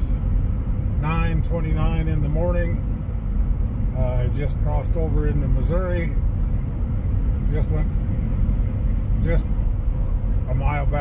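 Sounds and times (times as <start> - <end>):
car cabin road and engine drone: 0.0 - 11.0
man talking: 1.0 - 2.8, 3.9 - 6.2, 7.5 - 7.9, 9.1 - 9.5, 10.5 - 11.0.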